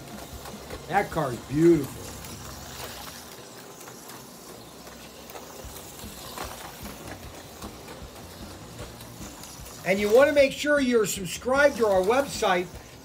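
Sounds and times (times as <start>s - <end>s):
slot car mechanical whir: 0.0s - 13.0s.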